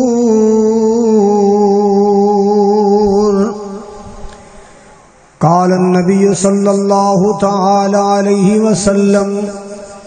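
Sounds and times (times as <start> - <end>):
man reciting melodically: 0.0 - 4.6, 5.4 - 10.0.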